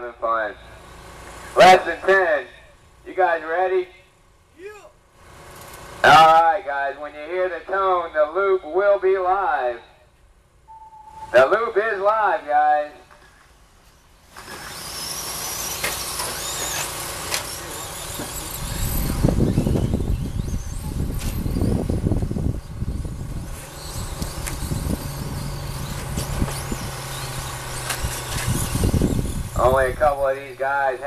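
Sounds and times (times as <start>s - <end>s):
electric motor whines: 13.8s - 31.0s.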